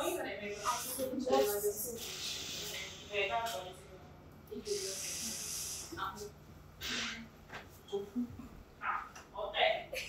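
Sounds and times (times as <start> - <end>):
person hissing: 2.0 - 3.2, 4.7 - 6.2.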